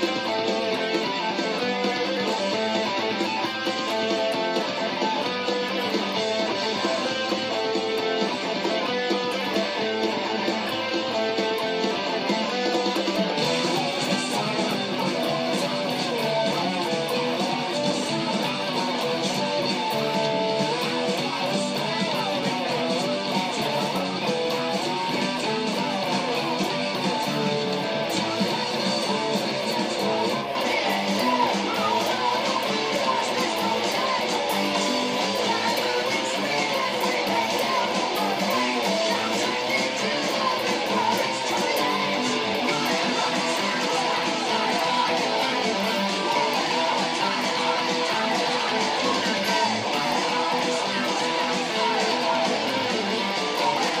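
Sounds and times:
overdriven electric guitar playing metal: 0.0 - 54.0.

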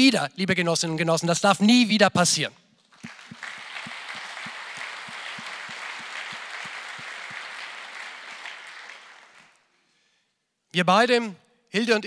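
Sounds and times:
audience applauding: 2.9 - 9.7.

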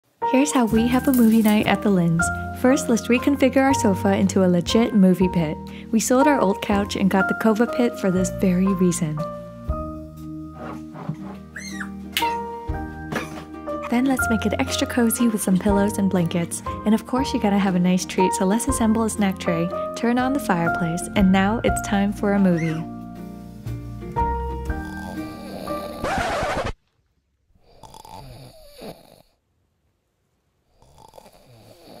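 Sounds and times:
background music with held notes: 0.2 - 26.0
dog whining: 11.5 - 12.5, 22.5 - 22.9
man snoring: 24.7 - 26.3, 27.6 - 29.4, 30.8 - 32.0.

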